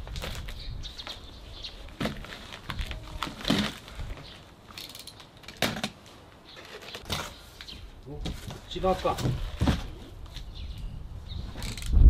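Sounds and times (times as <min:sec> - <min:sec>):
cardboard scraping and rustling: 0:08.2 - 0:10.1.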